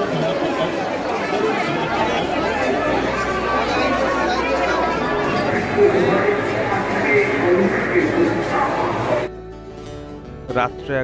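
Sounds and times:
dense crowd chatter: 0:00.0 - 0:09.3.

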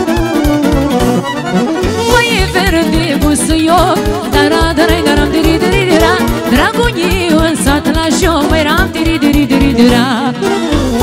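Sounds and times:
accordion: 0:00.0 - 0:11.0
trilling melody lead: 0:00.0 - 0:11.0.

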